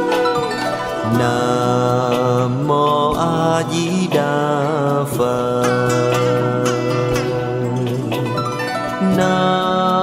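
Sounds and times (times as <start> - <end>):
instrumental accompaniment: 0.0 - 10.0
person chanting: 1.0 - 10.0.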